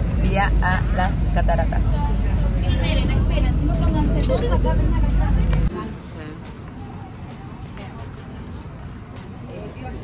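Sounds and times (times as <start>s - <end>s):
bus engine rumble: 0.0s - 10.0s
people talking: 0.2s - 8.7s.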